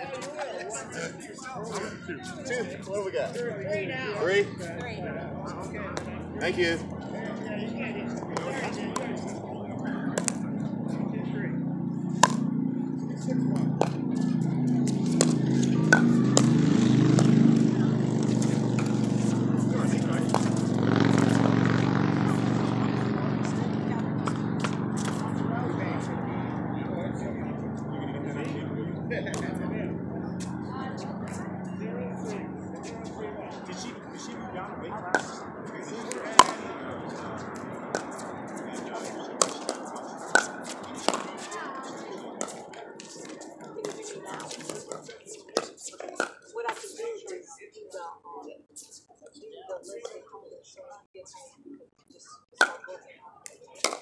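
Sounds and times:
murmur of voices: 0.0 - 54.0
paddles striking ball: 10.1 - 10.9, 12.0 - 12.7, 13.5 - 21.5, 35.1 - 35.5, 36.1 - 36.7, 37.5 - 41.4.

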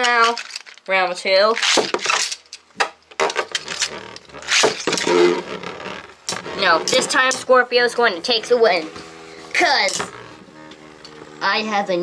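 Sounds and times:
spinning tops clattering and scraping: 0.0 - 5.1.

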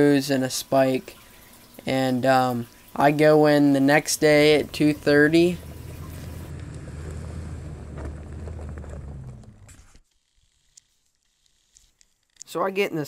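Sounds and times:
truck engine rumble: 4.2 - 10.0.

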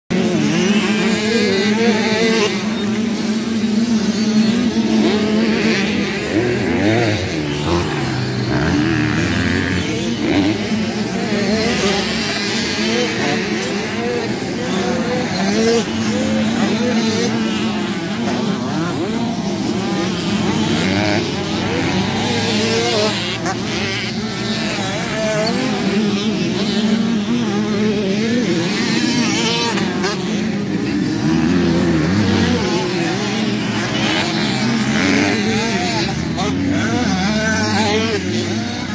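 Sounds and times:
dirt bike engine revving: 0.1 - 38.9.

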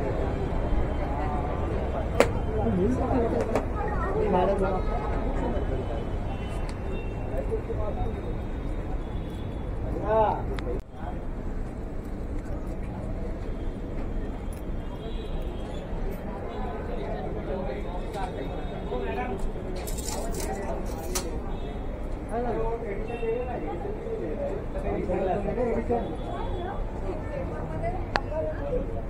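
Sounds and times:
passersby talking: 0.0 - 29.0
traffic rumble: 0.0 - 29.0.

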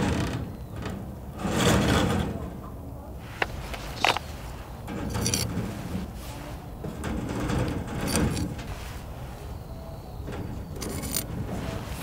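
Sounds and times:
shell scraping on wire grill: 3.4 - 12.0.

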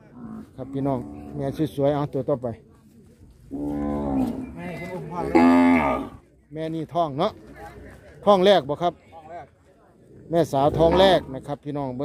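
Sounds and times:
cow mooing: 5.2 - 6.2.

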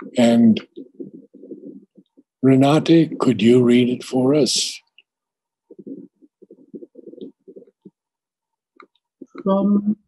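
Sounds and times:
faint muffled voice: 0.0 - 0.6, 2.4 - 4.8.

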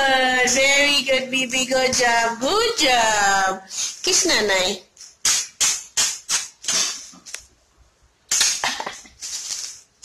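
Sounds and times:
close kisses: 5.0 - 7.5, 8.3 - 9.9.

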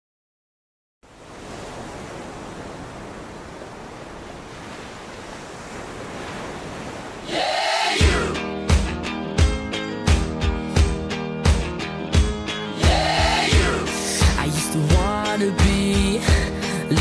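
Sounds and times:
steady rushing noise: 3.2 - 8.4.

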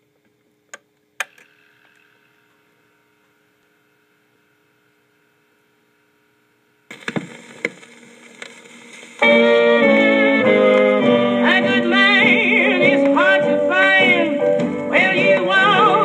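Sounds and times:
faint steady hum: 0.0 - 16.0
record surface hiss and crackle: 0.0 - 16.0
loud record pops: 6.8 - 11.0.

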